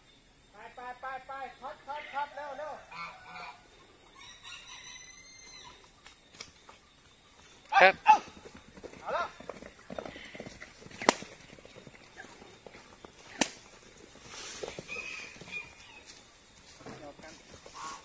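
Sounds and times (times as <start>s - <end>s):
whip crack: 11.0s - 11.3s, 13.3s - 13.6s.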